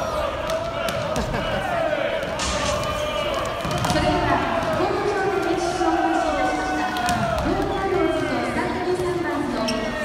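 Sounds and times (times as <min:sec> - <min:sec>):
crowd chatter: 0:00.0 - 0:10.0
volleyballs smacking on hardwood court: 0:00.3 - 0:01.4, 0:02.2 - 0:05.1, 0:06.9 - 0:07.8.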